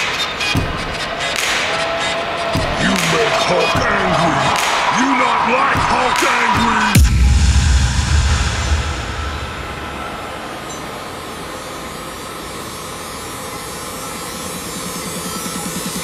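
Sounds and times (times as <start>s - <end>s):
thud: 7.0s - 10.4s
deep low rumble: 7.0s - 10.6s.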